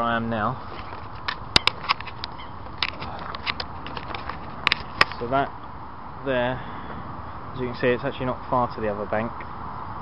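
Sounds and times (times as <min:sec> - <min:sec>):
steady outdoor hiss: 0:00.0 - 0:10.0
camera handling clicks and rustles: 0:00.7 - 0:05.2.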